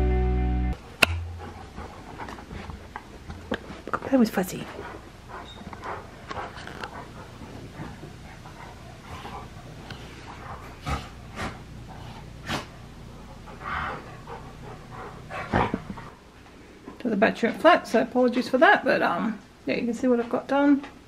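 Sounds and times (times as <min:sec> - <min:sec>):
dogs playing on carpet: 0:00.8 - 0:18.6.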